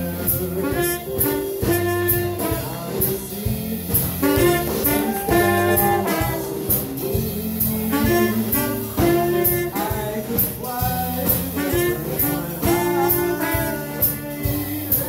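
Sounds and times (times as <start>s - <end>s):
drum kit: 0.0s - 15.0s
jazz horn section playing: 0.0s - 15.0s.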